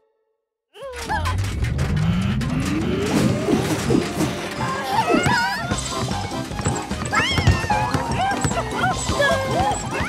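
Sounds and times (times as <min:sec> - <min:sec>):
cartoon background music: 0:00.8 - 0:10.0
squeaky cartoon voices exclaiming: 0:07.0 - 0:10.0.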